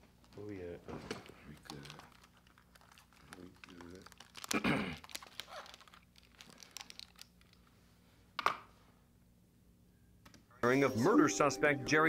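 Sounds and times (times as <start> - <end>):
headphones rustling and clicking: 0.1 - 7.8.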